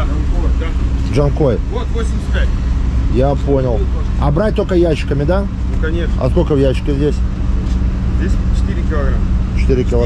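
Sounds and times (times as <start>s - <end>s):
people talking: 0.0s - 2.5s, 3.1s - 10.0s
low motor hum: 0.0s - 10.0s.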